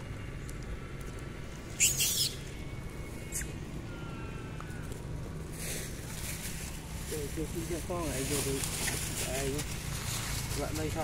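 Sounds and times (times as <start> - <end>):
low background hum: 0.0 - 11.0
monkey squealing: 1.8 - 4.6.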